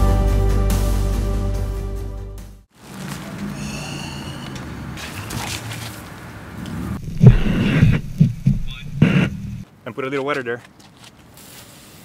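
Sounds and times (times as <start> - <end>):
gusts of rushing noise: 6.3 - 9.6.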